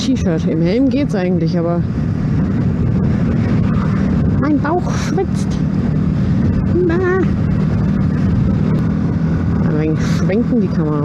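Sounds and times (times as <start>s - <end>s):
motorcycle engine running steadily: 0.0s - 11.0s
road and wind noise: 0.0s - 11.0s.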